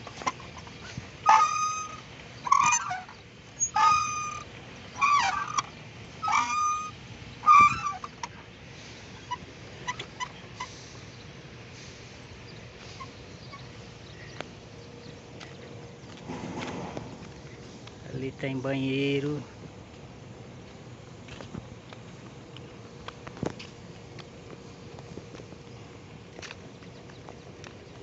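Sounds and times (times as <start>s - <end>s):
swing squeaking: 0.0s - 11.6s, 12.4s - 15.0s.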